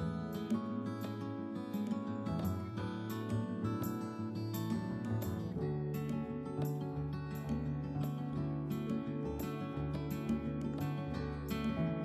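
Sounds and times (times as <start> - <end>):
instrumental guitar music: 0.0 - 12.0.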